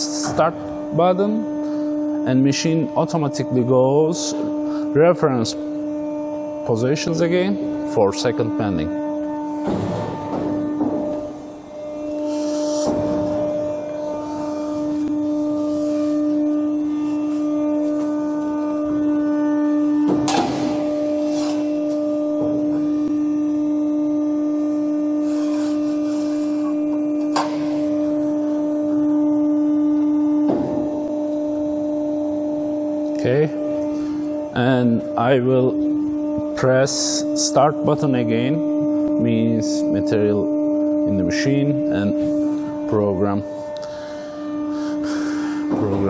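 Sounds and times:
hydraulic drive humming: 0.0s - 46.0s.

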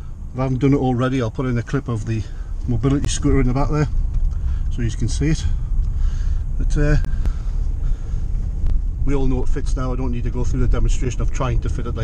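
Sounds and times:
car engine and road rumble: 0.0s - 12.0s
faint clicks: 5.8s - 6.0s.

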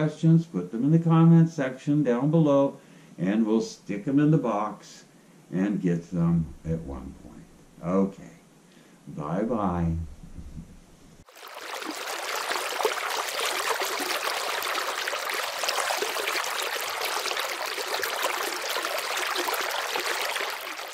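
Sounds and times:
river water rushing: 11.3s - 20.9s.

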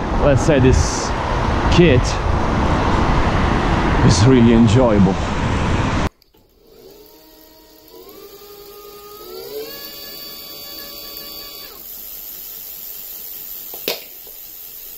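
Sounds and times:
electric motor whine: 6.3s - 12.0s.

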